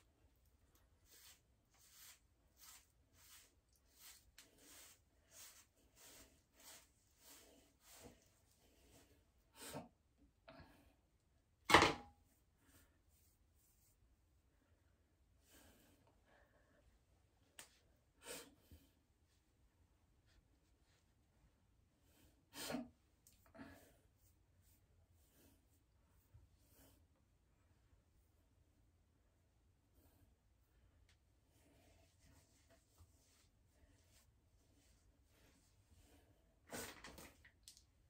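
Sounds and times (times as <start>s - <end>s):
hairbrush strokes through hair: 0.8s - 9.1s.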